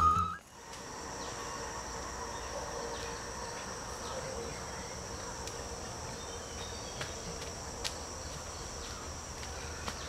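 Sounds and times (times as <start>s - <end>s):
insects chirring: 0.0s - 10.0s
footsteps on dirt path: 6.4s - 10.0s.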